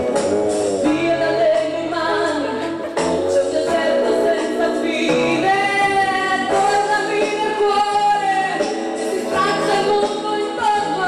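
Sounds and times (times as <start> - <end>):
musical accompaniment: 0.0 - 11.0
woman singing into a microphone: 0.8 - 11.0.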